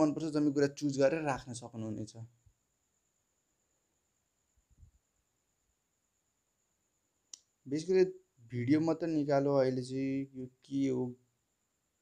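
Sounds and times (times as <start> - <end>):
man speaking: 0.0 - 2.3, 7.7 - 11.2.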